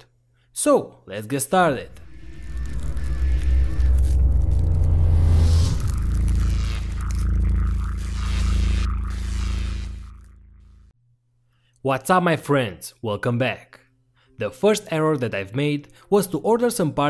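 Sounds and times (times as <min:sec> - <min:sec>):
deep building rumble: 0:01.7 - 0:10.9.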